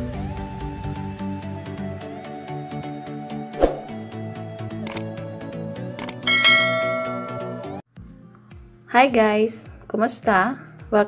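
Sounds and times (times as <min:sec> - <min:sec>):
button clicks: 0:04.9 - 0:05.1, 0:06.0 - 0:06.2
ringing bell ding: 0:06.2 - 0:07.8.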